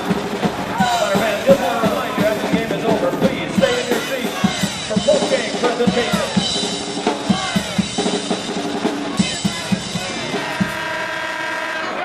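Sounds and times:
arena crowd noise: 0:00.0 - 0:12.0
loud horn blast chord: 0:09.5 - 0:12.0.

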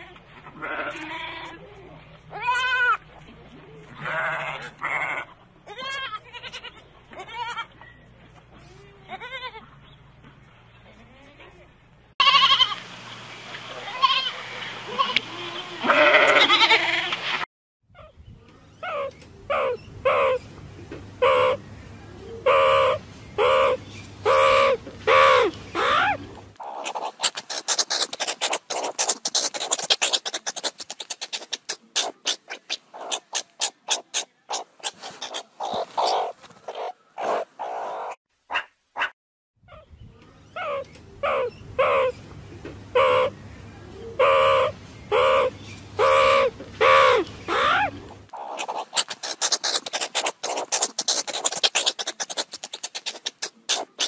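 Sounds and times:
goats bleating: 0:13.8 - 0:17.1
animal chirps and clicks: 0:26.6 - 0:38.1, 0:46.0 - 0:54.0.

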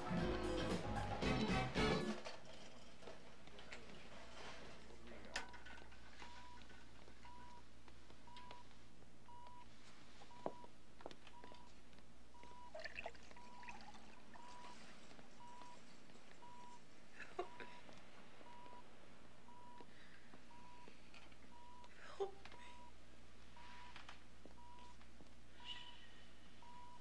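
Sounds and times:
heart monitor beeping: 0:06.2 - 0:15.8, 0:16.4 - 0:18.9, 0:19.5 - 0:21.9, 0:22.5 - 0:23.0, 0:23.6 - 0:27.0.

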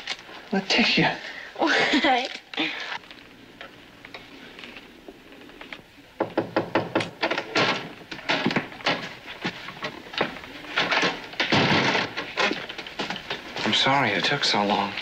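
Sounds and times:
knocks and thuds: 0:06.2 - 0:09.6, 0:10.2 - 0:13.2.

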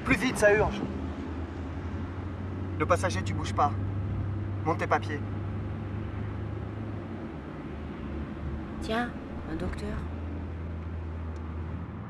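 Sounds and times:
car engine hum: 0:00.0 - 0:12.0
road noise rush: 0:00.0 - 0:12.0.

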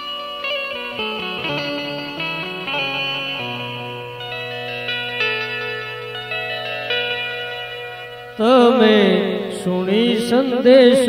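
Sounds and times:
sustained instrument chord: 0:00.0 - 0:10.6
man singing ornamented melody: 0:08.4 - 0:11.0.

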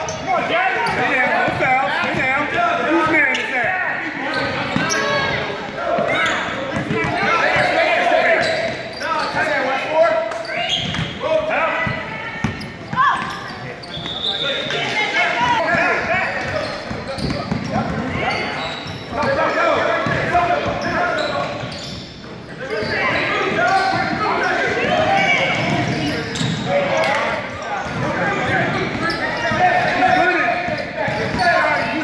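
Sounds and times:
shouting and chatter: 0:00.0 - 0:32.0.

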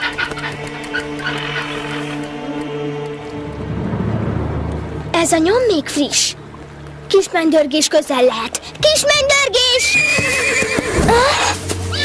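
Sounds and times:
pony whinnying: 0:09.8 - 0:12.0.

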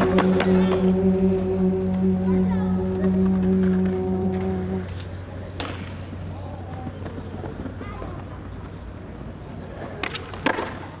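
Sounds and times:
steady low hum: 0:00.0 - 0:09.6.

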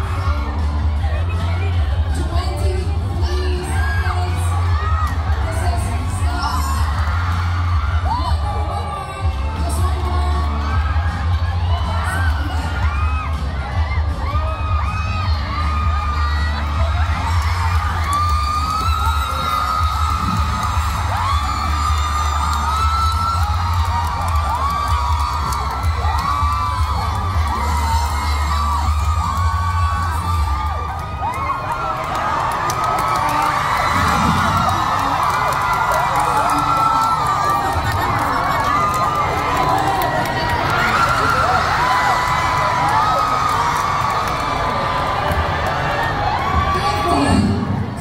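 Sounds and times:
steady deep bass: 0:00.0 - 0:31.5, 0:33.5 - 0:45.6
crowd screaming and cheering: 0:00.0 - 0:48.0.

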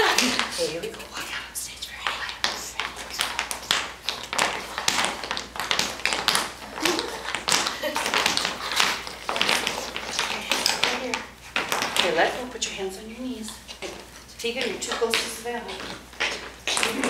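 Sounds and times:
tap shoes clicking on wooden floor: 0:02.0 - 0:12.4, 0:13.7 - 0:17.0.

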